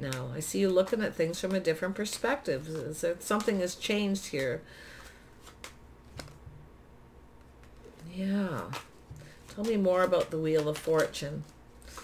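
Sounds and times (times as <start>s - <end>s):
cards clicking in hands: 5.4s - 6.4s, 8.6s - 12.0s.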